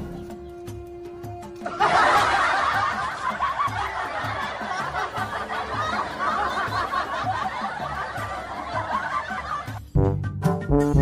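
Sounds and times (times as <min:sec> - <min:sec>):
background music with low beat: 0:00.0 - 0:11.0
people laughing: 0:01.6 - 0:09.8.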